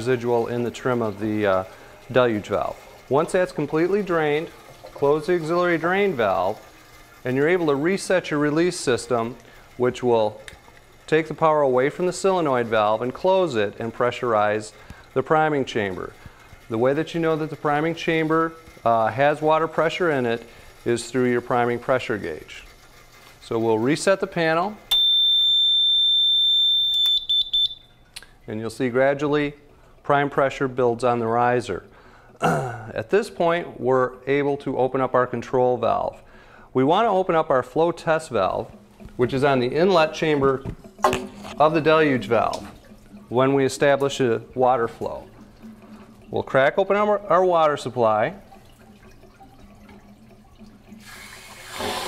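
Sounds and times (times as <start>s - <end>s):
high-pitched buzzer tone: 24.9s - 27.9s
short beeps: 24.9s - 28.0s
water rushing through pipe hiss: 51.0s - 52.0s.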